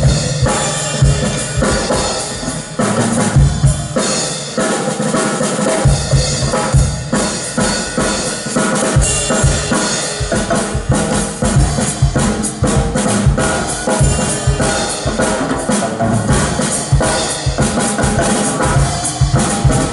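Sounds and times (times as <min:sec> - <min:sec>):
band playing live: 0:00.0 - 0:19.9.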